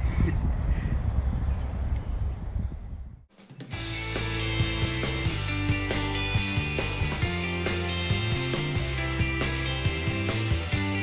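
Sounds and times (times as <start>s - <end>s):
background music with steady beat: 3.3s - 11.0s.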